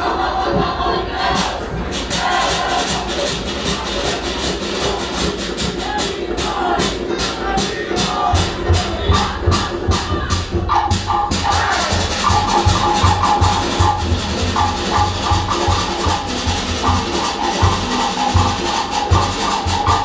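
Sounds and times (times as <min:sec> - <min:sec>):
deep bass drum beat: 0:00.0 - 0:20.0
people singing: 0:00.0 - 0:20.0
wooden log drum strokes: 0:07.7 - 0:20.0.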